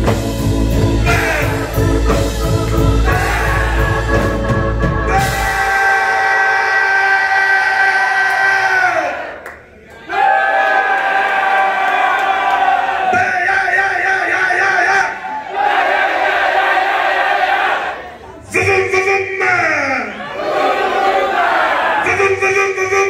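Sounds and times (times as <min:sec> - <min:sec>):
crowd singing long shouted notes: 0:01.0 - 0:09.4, 0:10.0 - 0:18.2, 0:20.2 - 0:22.1.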